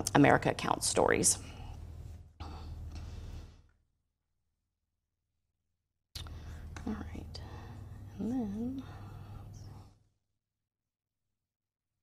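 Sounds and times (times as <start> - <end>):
steady low hum: 0.0 - 3.8, 6.2 - 10.3.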